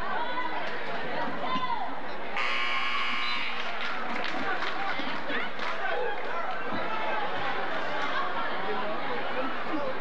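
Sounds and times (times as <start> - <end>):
crowd chatter: 0.0 - 10.0
scoreboard buzzer: 2.4 - 3.5.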